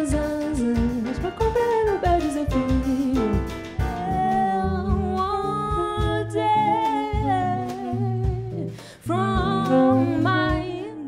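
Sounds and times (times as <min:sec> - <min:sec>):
bass: 0:00.0 - 0:11.0
light drums: 0:00.0 - 0:11.0
woman singing: 0:00.0 - 0:11.0.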